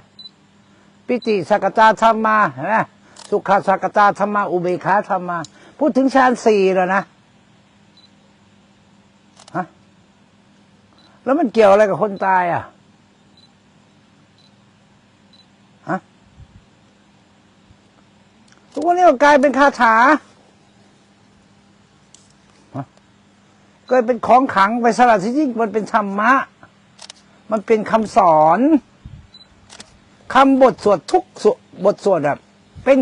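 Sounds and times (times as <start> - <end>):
faint background hiss: 0.0 - 33.0
man speaking: 1.1 - 7.1, 9.4 - 9.8, 11.2 - 12.8, 15.8 - 16.1, 18.8 - 20.4, 22.7 - 23.0, 23.9 - 26.7, 27.5 - 28.9, 30.3 - 33.0
man saying ha: 15.8 - 16.1, 22.7 - 22.9.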